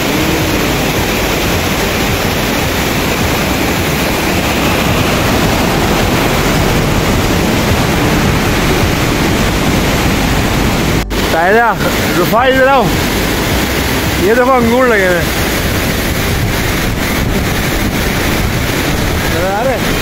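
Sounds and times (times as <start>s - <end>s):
stream rushing over rocks: 0.0s - 20.0s.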